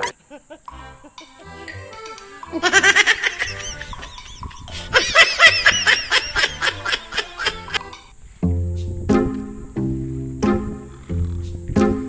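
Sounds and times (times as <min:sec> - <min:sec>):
hearty laughter: 0:00.0 - 0:01.6, 0:02.5 - 0:07.9
background music: 0:00.0 - 0:12.0.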